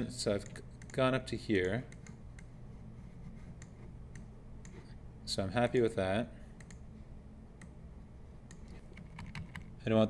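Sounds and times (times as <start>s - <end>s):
keyboard key tapping: 8.9s - 9.7s.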